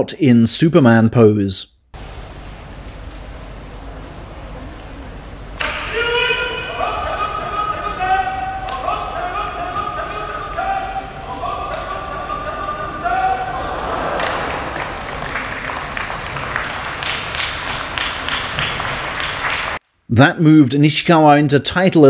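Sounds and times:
referee sing-song cries: 5.6s - 15.1s
spectators clapping: 8.6s - 19.8s.

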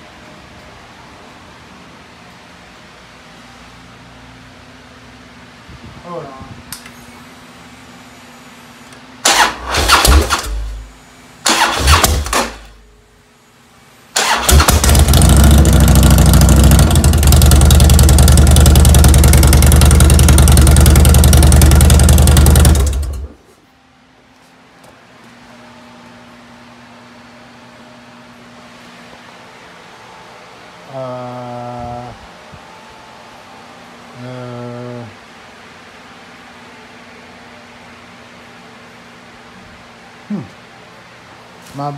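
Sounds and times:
motorcycle starter cranking: 9.2s - 10.8s, 11.4s - 12.7s, 14.2s - 23.3s
motorcycle engine running: 14.3s - 23.4s.

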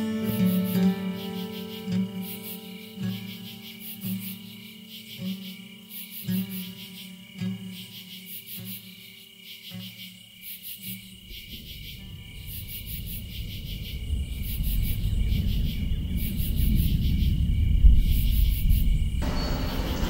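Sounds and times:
low rumbling room noise: 11.5s - 20.0s.

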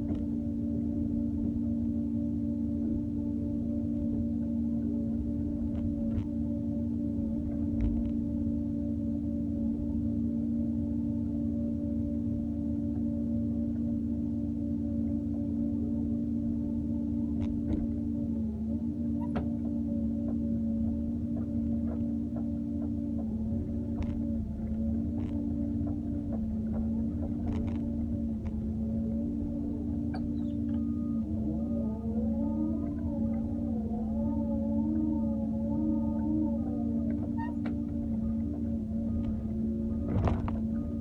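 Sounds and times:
excavator engine and hydraulic drone: 0.0s - 41.0s
hydraulic whine: 0.0s - 41.0s.

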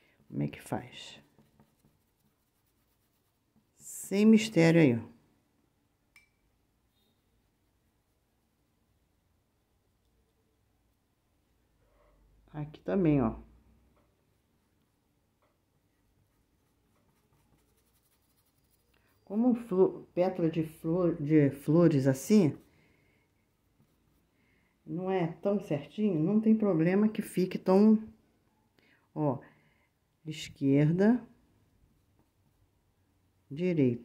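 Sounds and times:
paintbrush stroking on cloth: 0.0s - 4.8s, 6.9s - 8.9s, 14.2s - 19.8s, 20.7s - 24.7s, 30.8s - 33.5s.

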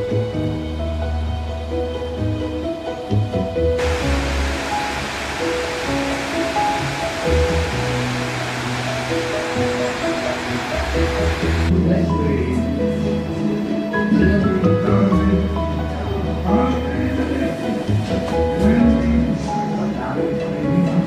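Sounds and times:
background music: 0.0s - 21.0s
water pouring over a weir: 3.8s - 11.7s.

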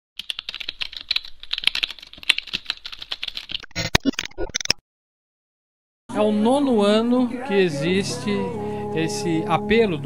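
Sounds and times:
rapid keyboard typing clicks: 0.2s - 3.7s.

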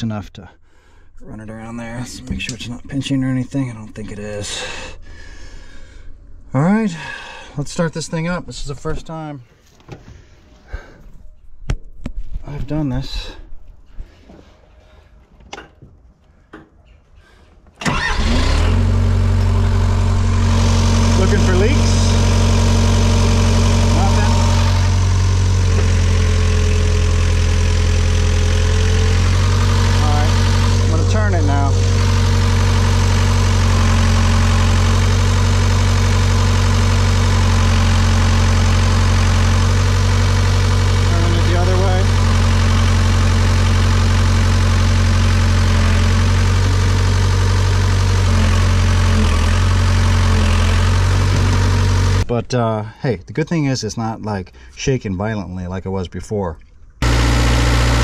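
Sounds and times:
excavator diesel engine idling: 17.9s - 52.2s, 57.0s - 58.0s.

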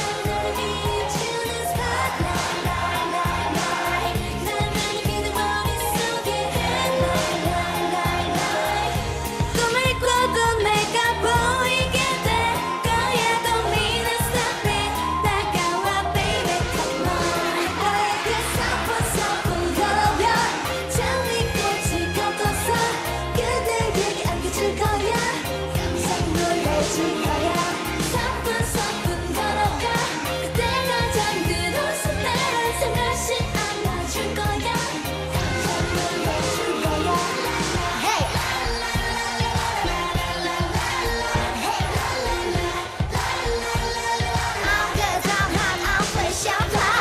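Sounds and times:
backing track with driving beat: 0.0s - 47.0s
women singing dance-pop song: 0.0s - 47.0s.

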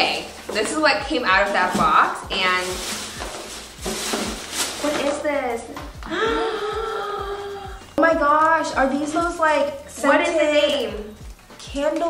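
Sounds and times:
paper packaging rustling: 0.0s - 5.7s
low thud of background music: 0.5s - 10.2s.

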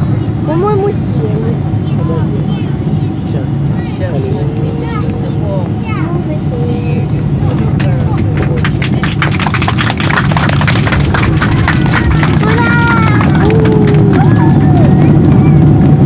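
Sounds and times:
aircraft engines rumbling: 0.0s - 16.0s.

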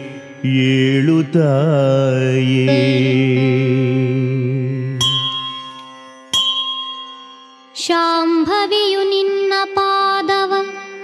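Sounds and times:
bell ringing: 5.0s - 8.6s.

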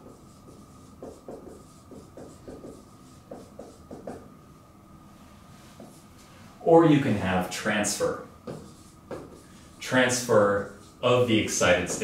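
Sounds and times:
marker squeaking on whiteboard: 0.0s - 4.3s, 8.4s - 11.1s.

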